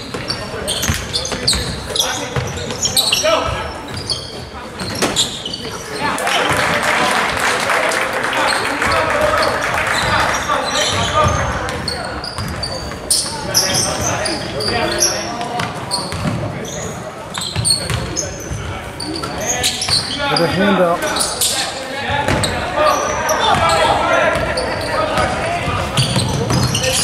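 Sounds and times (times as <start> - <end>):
sneakers squeaking: 0.0 - 7.1, 8.4 - 27.0
players and spectators calling out: 0.0 - 27.0
ball bouncing on hardwood court: 15.6 - 16.5, 17.4 - 18.2, 22.3 - 22.6, 23.4 - 27.0.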